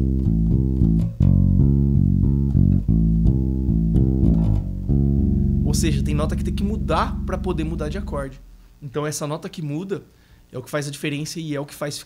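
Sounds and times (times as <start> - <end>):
electric bass plucked notes: 0.0 - 8.7.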